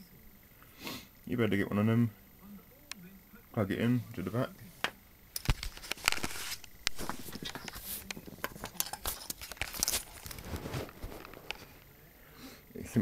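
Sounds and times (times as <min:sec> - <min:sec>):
clicks and knocks of handling: 0:04.8 - 0:11.9.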